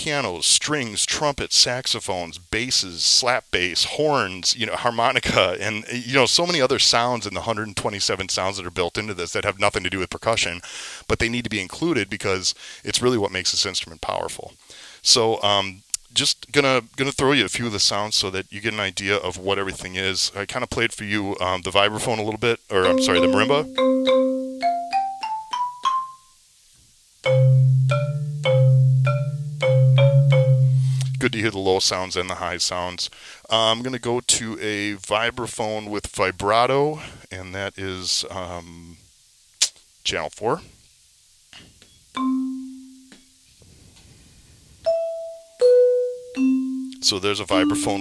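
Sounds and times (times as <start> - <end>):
marimba notes: 22.8 - 26.2, 27.2 - 31.4, 42.2 - 43.2, 44.9 - 48.0.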